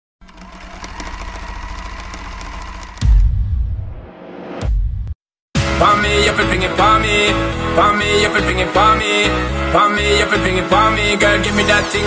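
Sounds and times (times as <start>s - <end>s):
rapid mechanical rattle: 0.2s - 3.2s
deep boom: 2.2s - 7.8s.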